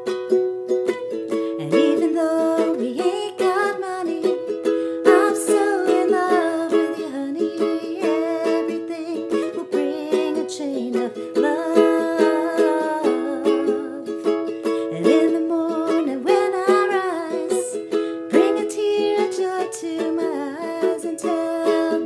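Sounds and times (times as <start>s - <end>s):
ukulele strumming: 0.0s - 22.0s.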